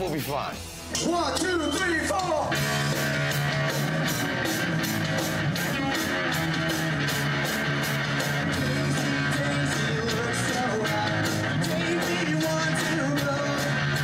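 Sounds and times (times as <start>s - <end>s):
drum kit beat: 0.0s - 14.0s
electric guitars strumming: 0.0s - 14.0s.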